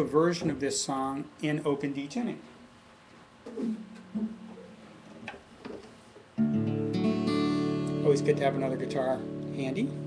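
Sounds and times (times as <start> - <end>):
acoustic guitar chord strummed: 3.6 - 4.8, 6.4 - 10.0.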